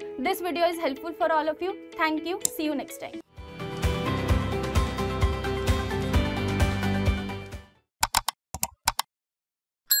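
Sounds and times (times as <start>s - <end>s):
sharp keyboard typing clicks: 8.0s - 9.1s.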